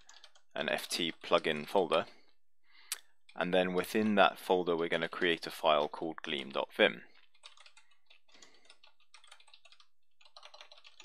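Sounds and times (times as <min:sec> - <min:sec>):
typing on a computer keyboard: 0:00.0 - 0:01.7, 0:07.1 - 0:11.0.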